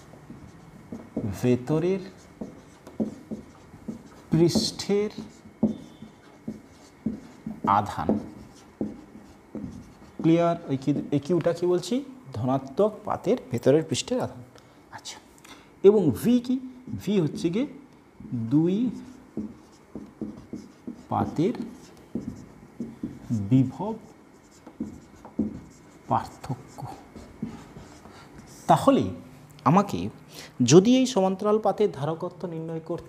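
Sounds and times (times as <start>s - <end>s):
marker writing on whiteboard: 0.0s - 13.6s, 16.2s - 29.2s.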